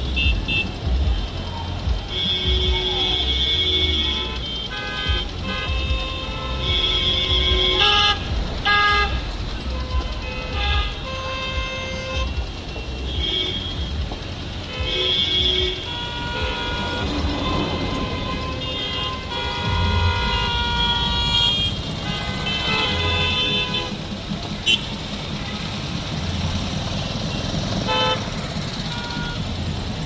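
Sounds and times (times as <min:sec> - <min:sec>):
car horns honking: 0:00.0 - 0:30.0
low rumble of slow traffic: 0:00.0 - 0:30.0.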